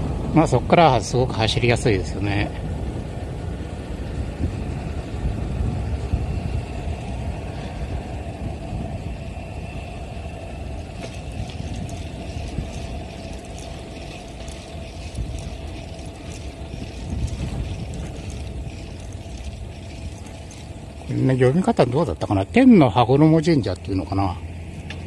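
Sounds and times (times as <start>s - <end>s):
wind and road noise: 0.0s - 25.0s
bicycle ticking: 10.0s - 22.4s.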